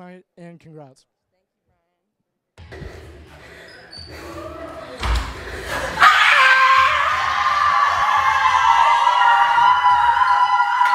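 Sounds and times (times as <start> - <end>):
girls screaming together: 5.9 - 10.9.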